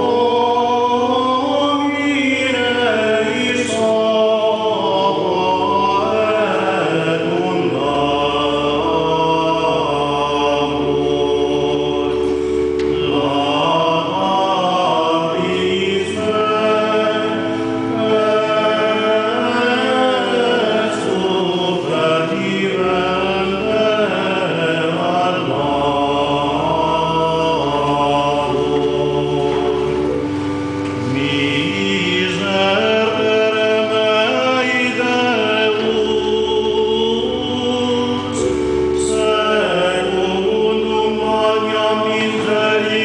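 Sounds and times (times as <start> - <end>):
choir singing chant: 0.0 - 43.0.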